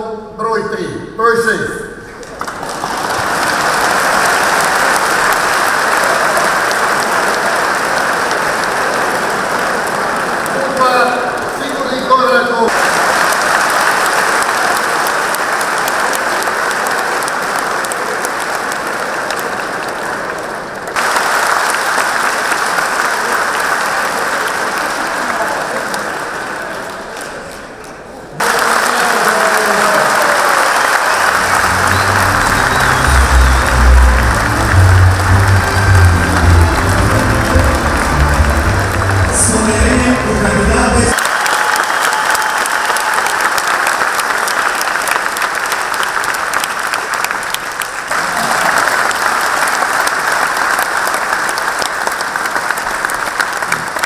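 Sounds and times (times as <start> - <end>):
crowd applause: 2.2 - 54.0
loud music with heavy bass: 31.4 - 41.2.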